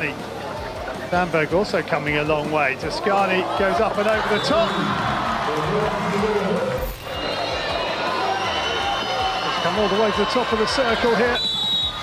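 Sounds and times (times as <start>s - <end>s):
stadium crowd cheering and singing: 0.0s - 12.0s.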